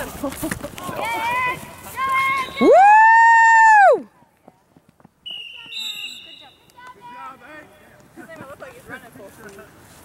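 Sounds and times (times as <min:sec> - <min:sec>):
person whooping: 0:02.6 - 0:04.1
fainter higher call: 0:05.3 - 0:06.8.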